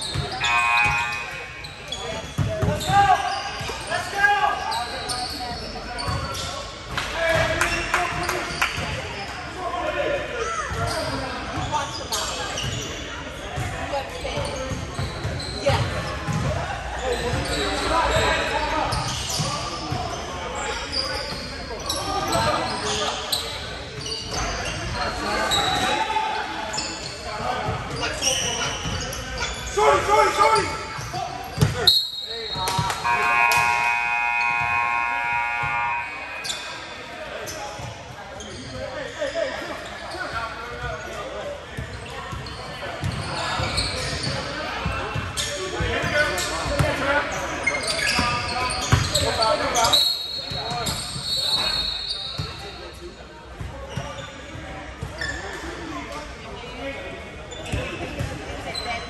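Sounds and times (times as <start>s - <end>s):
players calling out: 0.0s - 53.0s
sneakers squeaking: 0.0s - 59.0s
short whistle: 31.8s - 34.9s.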